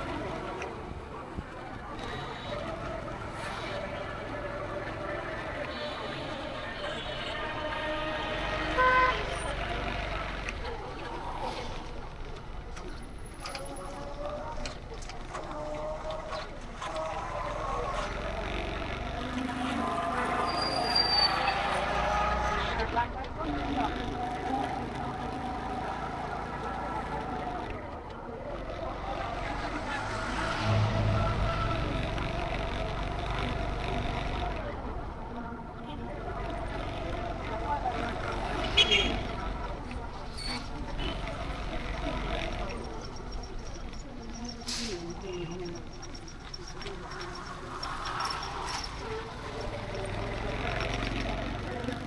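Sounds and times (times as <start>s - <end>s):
busy street traffic: 0.0s - 52.0s
vehicle horn beep: 8.7s - 9.3s, 38.6s - 39.2s.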